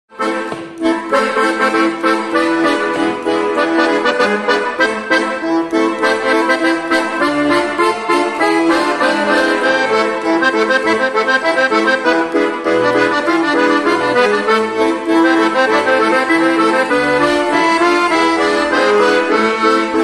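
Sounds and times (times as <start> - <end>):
accordion playing lively melody: 0.1 - 20.0.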